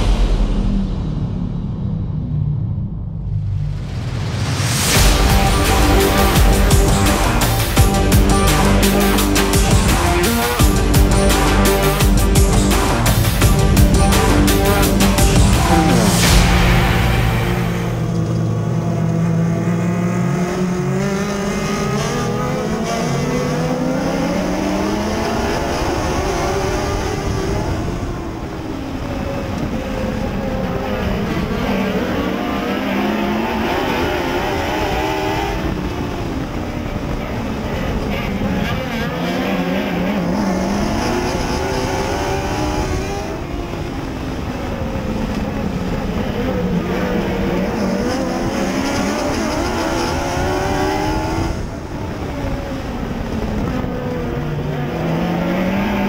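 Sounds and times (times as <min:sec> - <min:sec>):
race car engine revving: 0:02.8 - 0:56.0.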